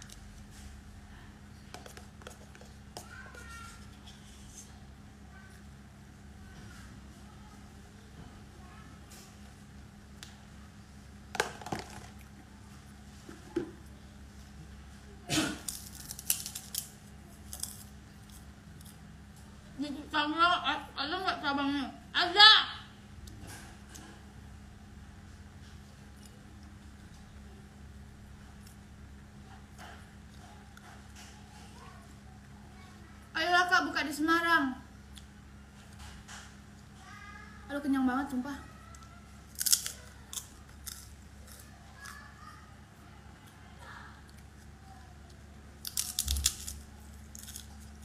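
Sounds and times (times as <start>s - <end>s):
crunching of fried chicken: 15.3s - 19.4s, 38.8s - 48.0s
food crackling while pulled apart: 15.6s - 19.0s, 39.5s - 42.2s, 45.8s - 48.0s
chewing: 43.4s - 48.0s.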